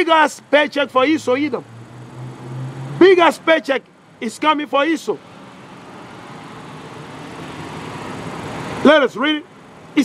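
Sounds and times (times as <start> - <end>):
passing vehicle tyre and engine noise: 1.2 - 4.0.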